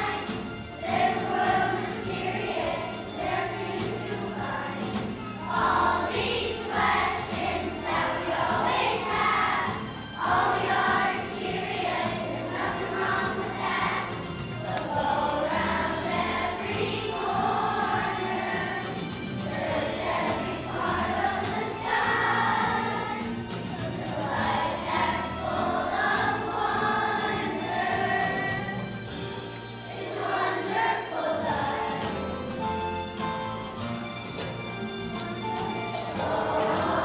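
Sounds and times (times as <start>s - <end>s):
children's choir singing: 0.0s - 37.0s.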